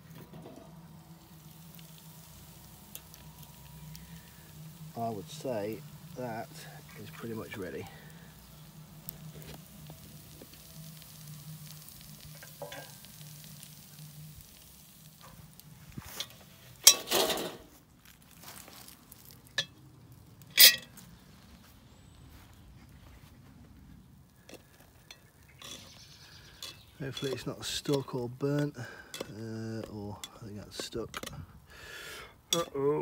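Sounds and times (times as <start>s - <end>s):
cast iron pot scraping: 0.0s - 19.8s, 20.4s - 21.0s, 24.4s - 31.5s, 32.5s - 33.0s
metal clanks: 12.4s - 13.0s, 16.2s - 17.7s, 20.5s - 20.9s, 26.5s - 31.4s, 32.5s - 32.8s.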